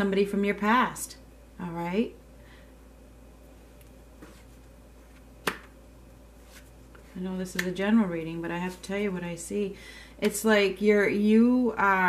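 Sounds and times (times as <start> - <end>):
card snapping onto table: 5.4 - 5.7.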